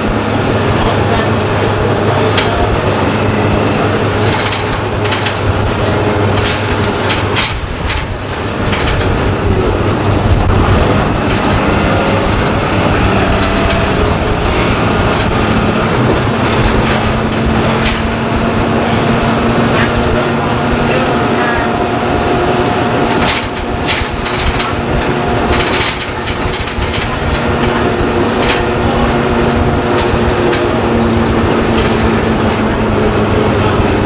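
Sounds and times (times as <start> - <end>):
bus body rattling: 0.0 - 34.0
diesel bus engine drone: 0.0 - 34.0.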